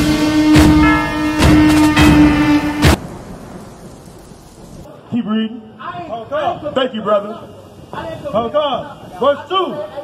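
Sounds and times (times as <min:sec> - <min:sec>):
hiss and rumble: 0:00.0 - 0:05.1.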